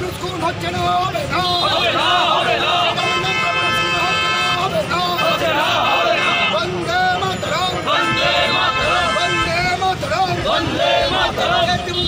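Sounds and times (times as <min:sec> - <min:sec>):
voices of marching crowd: 0:00.0 - 0:12.0
vehicle horn blast: 0:08.0 - 0:09.6.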